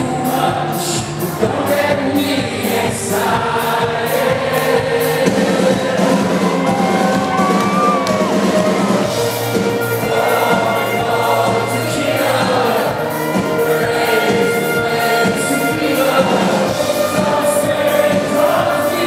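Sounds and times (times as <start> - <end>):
live rock band playing: 0.0 - 19.0
person singing: 0.0 - 19.0.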